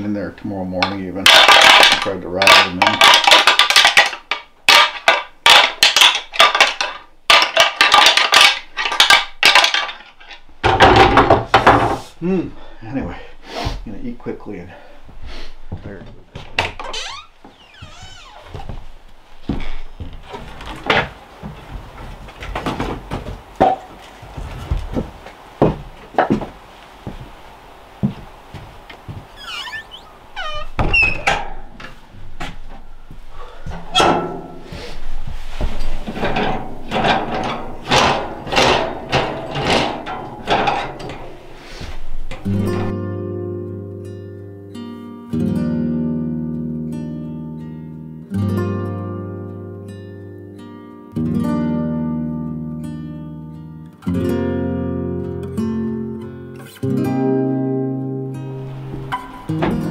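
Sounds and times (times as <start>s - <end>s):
knocks and clatters of objects: 0.8s - 12.0s, 15.8s - 27.4s, 33.7s - 42.9s, 58.8s - 59.9s
brief squeaks: 29.4s - 31.3s
gentle plucked-string music: 42.3s - 59.9s.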